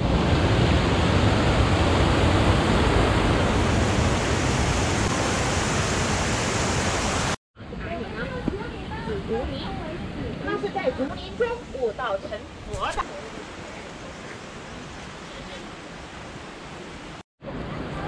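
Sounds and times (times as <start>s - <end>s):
water rushing over rocks: 0.0s - 7.4s, 12.5s - 18.0s.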